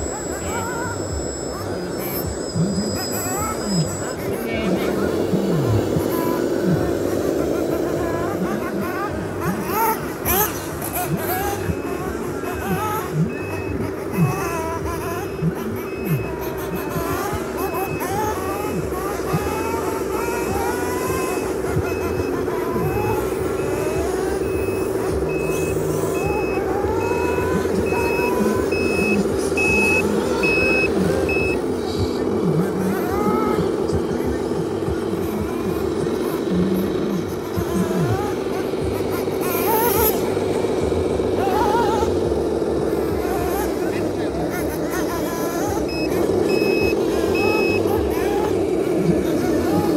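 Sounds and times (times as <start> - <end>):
reversing beeper: 0.0 - 32.5, 45.6 - 49.4
simulated diesel engine drone: 0.0 - 49.9.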